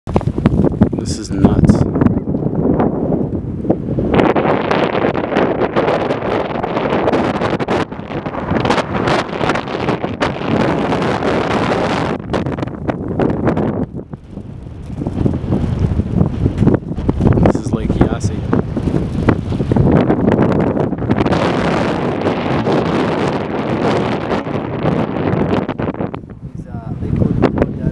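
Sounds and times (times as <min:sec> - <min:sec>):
wind buffeting microphone: 0:00.1 - 0:27.9.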